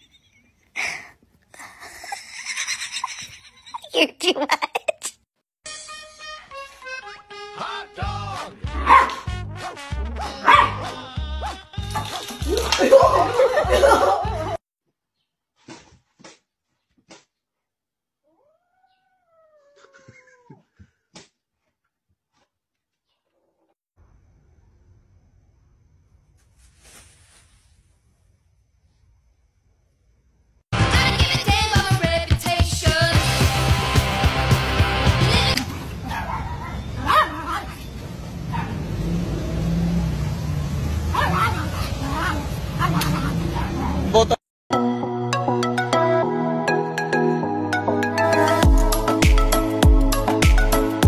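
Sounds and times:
small dog barking: 8.8s - 9.3s, 10.2s - 12.2s, 36.0s - 37.8s, 41.1s - 44.1s.

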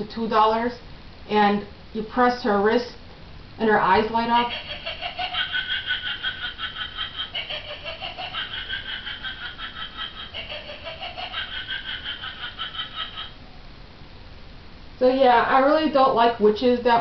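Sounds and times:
toy witch cackling through speaker: 4.2s - 13.4s.

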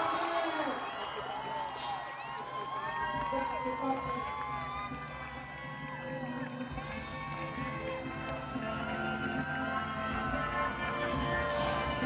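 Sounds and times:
music with sustained held notes: 4.0s - 12.0s.

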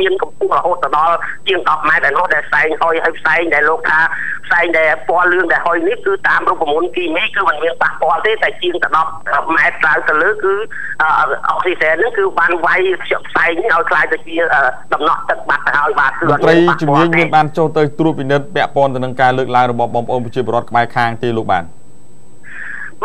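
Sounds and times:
person talking over telephone: 0.0s - 21.6s.

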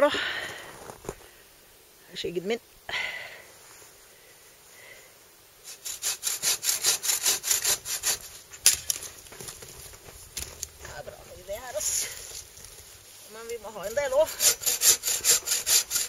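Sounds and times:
bow saw cutting branch: 5.6s - 9.1s, 13.8s - 16.0s.

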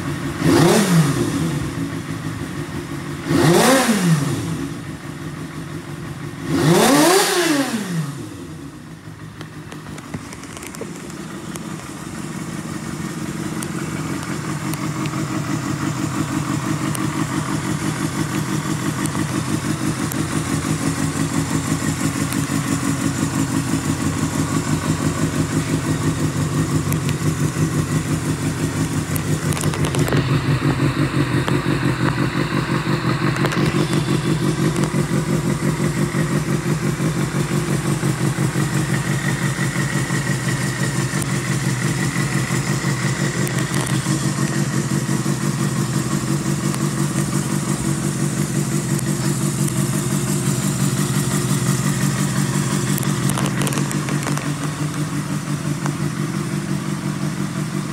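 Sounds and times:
motorcycle engine idling: 0.0s - 57.9s.

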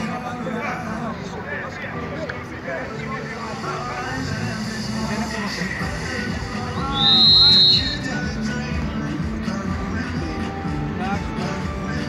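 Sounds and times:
music over loudspeakers: 0.0s - 12.0s
voices: 0.0s - 12.0s
referee's whistle blast: 6.8s - 8.2s.

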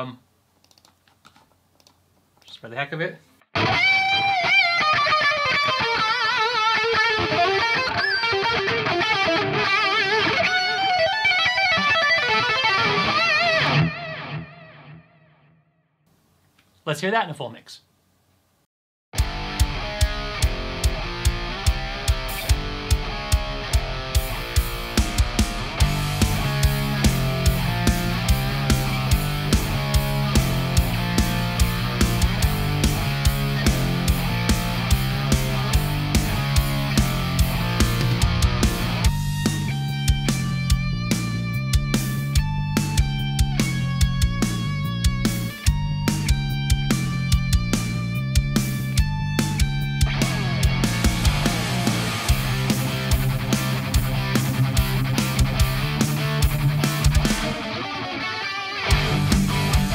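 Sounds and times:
distorted electric guitar: 3.5s - 15.6s, 19.2s - 59.9s
bass line: 19.2s - 57.5s, 58.9s - 59.9s
steady drum beat: 19.2s - 57.6s, 58.9s - 59.9s.

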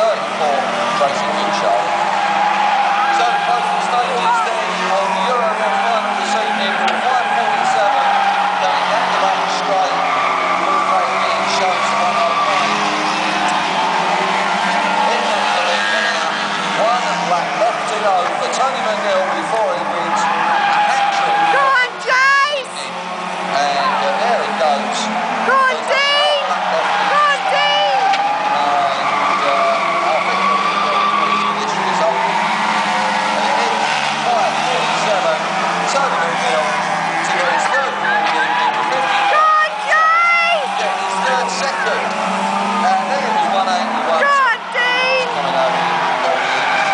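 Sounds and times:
race car engines: 0.0s - 46.9s.

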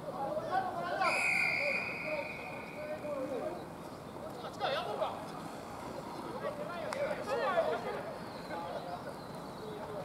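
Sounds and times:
distant players calling out: 0.1s - 3.8s.

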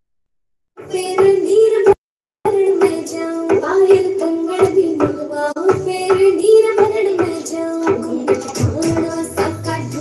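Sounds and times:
steady percussive beat: 2.7s - 10.0s.

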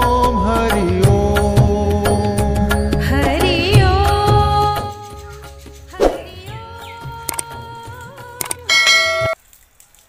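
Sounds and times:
sharp clicks: 7.2s - 7.6s, 8.3s - 8.7s
bell-like chime: 8.7s - 9.4s
metallic clang with ringing: 8.7s - 9.4s.

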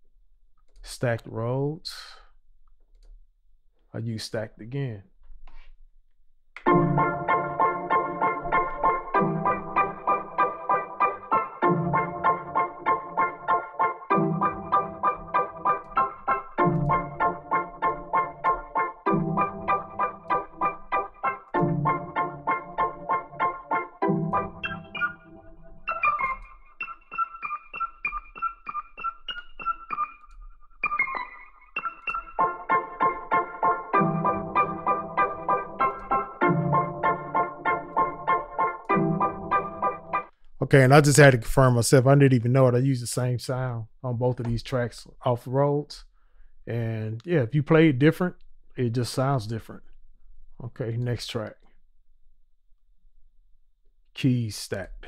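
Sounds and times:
keyboard playing pulsing chords: 6.6s - 40.4s.

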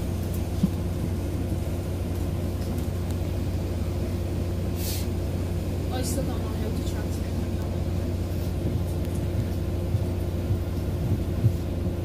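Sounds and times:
bus diesel engine running: 0.0s - 12.0s
compressed air hiss: 4.7s - 5.2s.

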